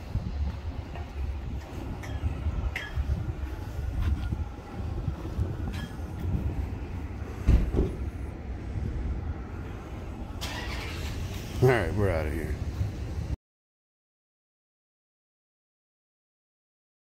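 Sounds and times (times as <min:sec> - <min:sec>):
low outdoor rumble: 0:00.0 - 0:13.4
loud thump: 0:07.4 - 0:08.2
man's voice: 0:11.6 - 0:12.6.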